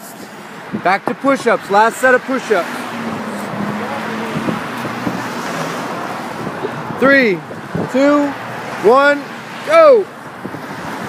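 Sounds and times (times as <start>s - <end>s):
cars passing on street: 0.0s - 11.0s.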